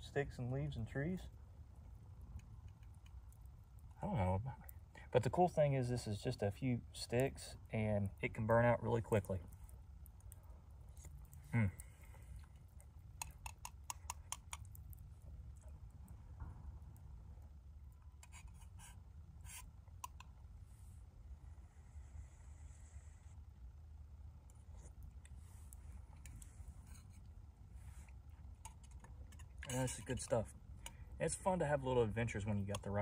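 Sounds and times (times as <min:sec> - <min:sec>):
low steady rumble: 0:00.0 - 0:33.0
man murmuring: 0:11.5 - 0:11.9.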